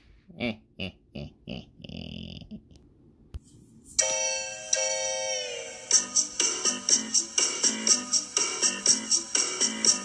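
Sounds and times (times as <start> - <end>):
person chuckling: 0.2 - 2.9.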